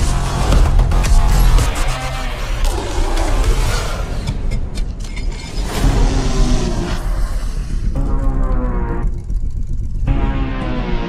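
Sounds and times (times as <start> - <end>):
car engine: 0.0 - 11.0
deep rumble: 0.0 - 11.0
trailer music: 0.0 - 11.0.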